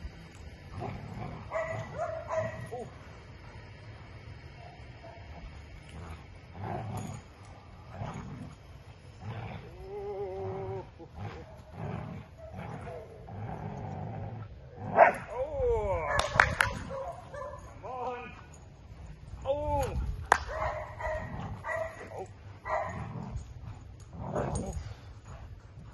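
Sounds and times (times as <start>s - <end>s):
dog growling: 0.7s - 2.0s, 5.4s - 7.3s, 7.9s - 15.4s, 21.1s - 25.9s.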